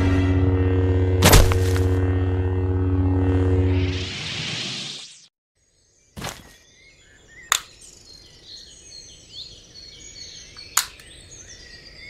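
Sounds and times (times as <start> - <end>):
birds chirping and calling: 6.2 - 12.0.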